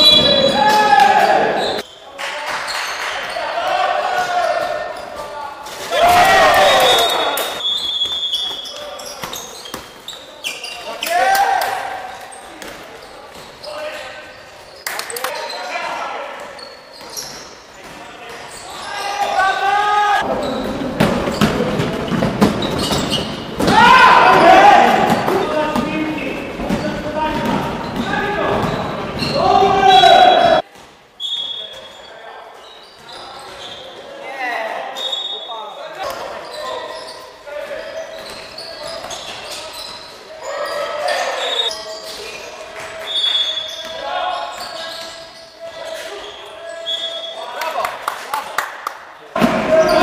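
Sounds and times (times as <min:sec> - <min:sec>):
players shouting: 0:00.0 - 0:01.8, 0:05.8 - 0:07.6, 0:18.7 - 0:20.6, 0:23.6 - 0:30.6
sneaker squeaks: 0:00.0 - 0:19.6, 0:20.2 - 0:47.8, 0:49.6 - 0:50.0.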